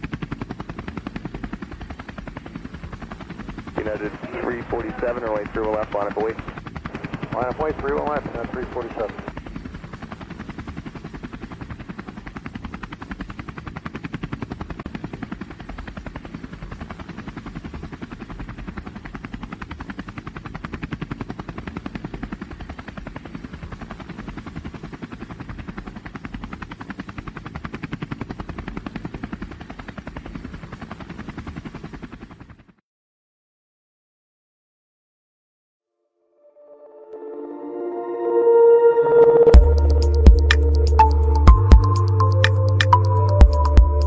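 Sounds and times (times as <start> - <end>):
drone propellers buzzing: 0.4 - 14.1, 38.3 - 44.0.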